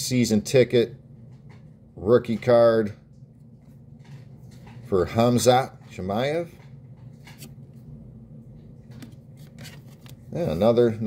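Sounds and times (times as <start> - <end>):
low steady hum: 0.0 - 11.0
trading cards clicking and rustling: 3.8 - 7.9, 8.6 - 10.8.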